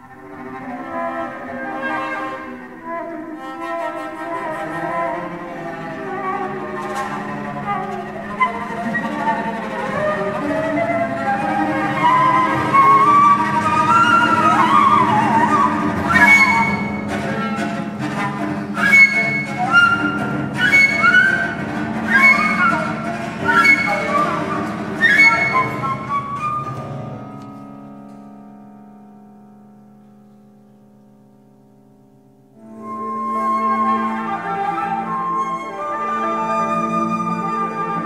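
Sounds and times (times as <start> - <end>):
flute lines: 0.0 - 27.5, 32.6 - 38.0.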